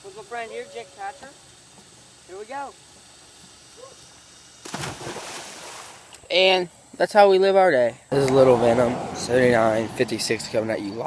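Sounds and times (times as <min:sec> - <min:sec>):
body splashing into pool: 0:04.6 - 0:06.0.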